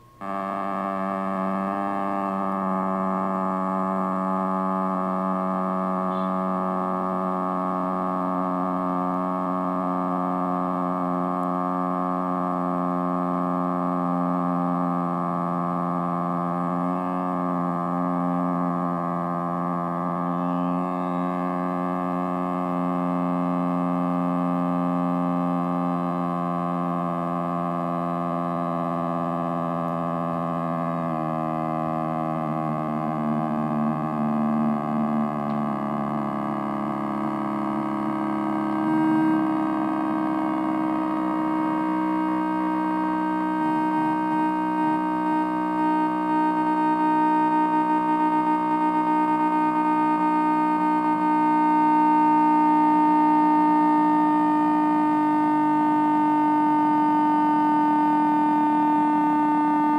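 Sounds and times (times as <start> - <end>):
electronic drone of held tones: 0.0 - 59.9.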